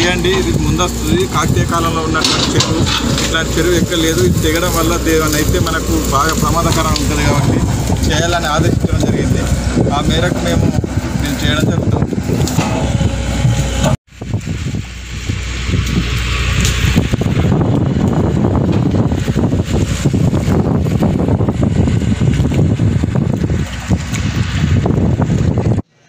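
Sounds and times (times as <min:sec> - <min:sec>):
wind buffeting microphone: 0:00.0 - 0:25.9.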